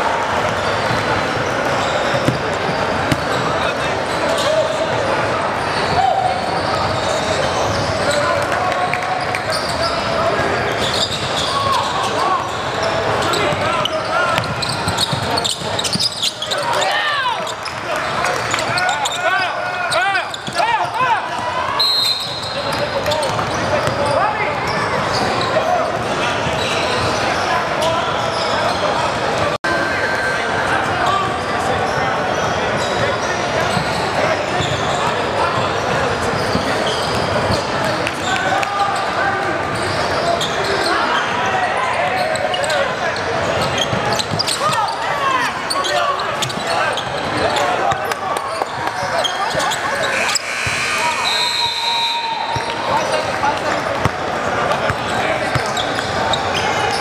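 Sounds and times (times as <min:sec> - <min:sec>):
crowd talking and shouting: 0:00.0 - 0:57.0
basketball bouncing on hardwood: 0:03.1 - 0:03.4.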